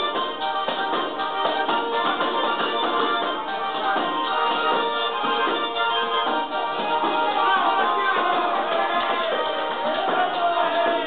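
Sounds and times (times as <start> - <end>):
button accordion dance tune: 0.0 - 11.0.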